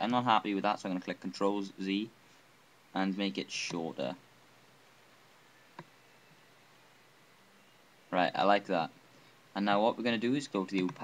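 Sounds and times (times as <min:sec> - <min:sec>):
computer mouse click: 0:05.7 - 0:05.9.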